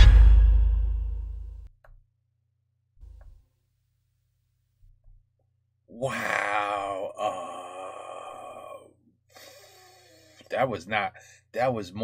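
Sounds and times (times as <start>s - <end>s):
man groaning: 5.9s - 9.0s.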